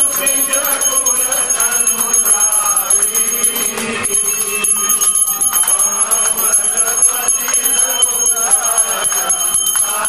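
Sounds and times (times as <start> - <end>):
temple bells ringing rapidly: 0.0 - 10.0.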